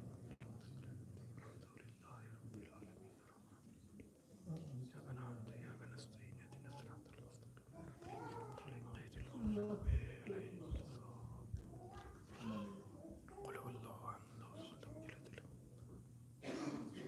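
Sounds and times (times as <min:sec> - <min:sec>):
steady low hum: 0:00.0 - 0:17.0
person murmuring recitation: 0:00.4 - 0:03.8, 0:04.5 - 0:15.6.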